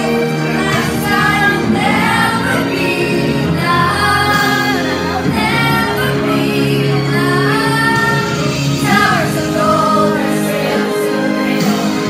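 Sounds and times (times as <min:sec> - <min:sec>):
karaoke backing track: 0:00.0 - 0:12.0
woman singing into a microphone: 0:00.7 - 0:12.0.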